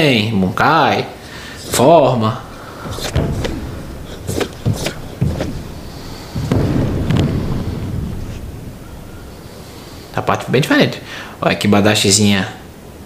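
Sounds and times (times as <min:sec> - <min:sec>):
bare feet stamping on platform: 0:01.6 - 0:08.5.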